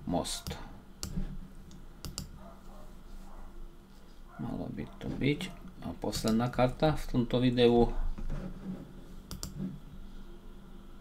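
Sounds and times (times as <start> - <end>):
computer mouse clicking: 0.4 - 2.4, 9.3 - 9.6.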